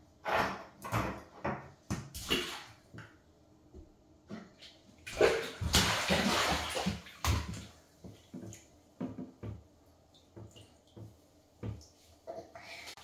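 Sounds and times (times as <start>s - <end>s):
baby splashing in bathwater: 5.1s - 7.7s.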